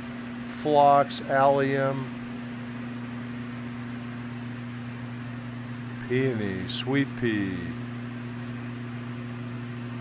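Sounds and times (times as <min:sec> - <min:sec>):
refrigeration fans humming: 0:00.0 - 0:10.0.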